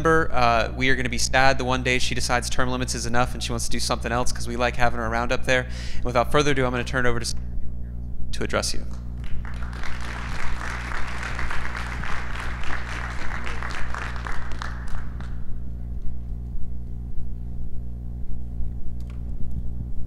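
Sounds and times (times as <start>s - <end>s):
audience applauding: 9.2s - 15.4s.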